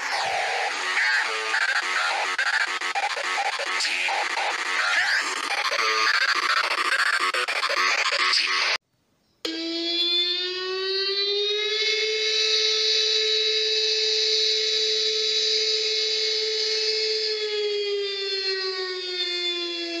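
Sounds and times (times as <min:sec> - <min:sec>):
warning siren wailing: 0:00.0 - 0:08.7, 0:09.5 - 0:20.0.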